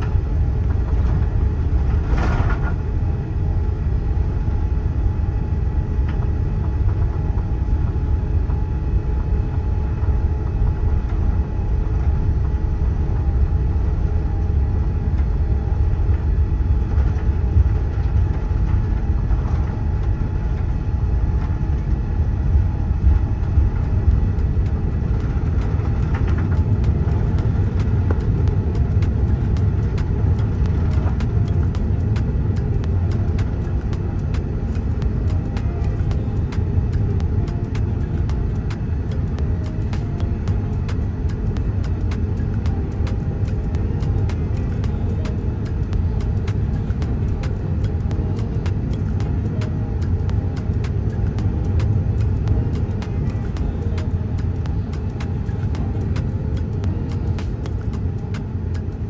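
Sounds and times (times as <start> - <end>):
deep rumble of jet engines: 0.0 - 59.0
faint steady engine tone: 0.0 - 59.0.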